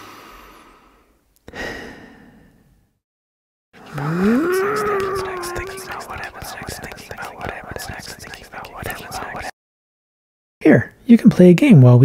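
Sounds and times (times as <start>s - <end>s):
man groaning in frustration: 3.8s - 6.6s
man grumbling: 3.8s - 6.8s.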